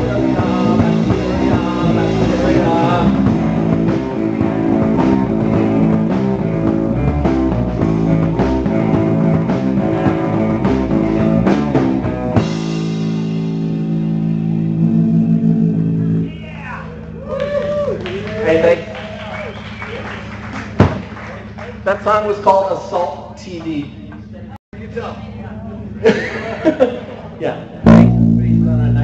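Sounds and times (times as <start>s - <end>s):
drum kit: 0.0s - 16.2s, 27.9s - 29.0s
electric guitar: 0.0s - 16.3s
bass guitar: 0.0s - 21.6s, 23.2s - 29.0s.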